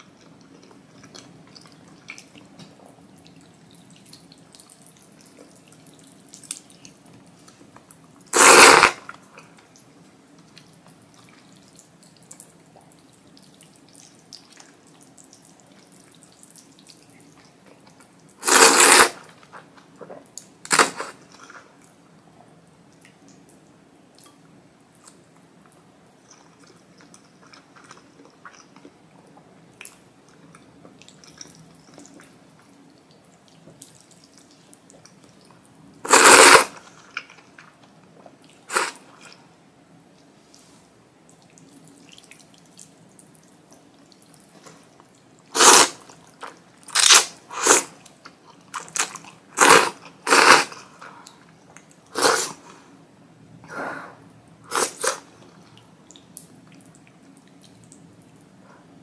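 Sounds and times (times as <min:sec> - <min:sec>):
chewing: 0:00.0 - 0:08.0, 0:24.2 - 0:39.4
person slurping noodles: 0:08.3 - 0:09.1, 0:18.4 - 0:19.3, 0:36.0 - 0:36.9, 0:38.7 - 0:39.1, 0:45.5 - 0:46.0, 0:47.0 - 0:47.9, 0:49.6 - 0:50.9, 0:52.1 - 0:52.7, 0:54.7 - 0:55.3.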